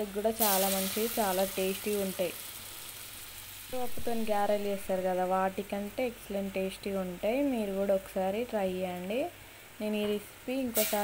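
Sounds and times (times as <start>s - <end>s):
dough sizzling in hot oil: 0.0s - 11.0s.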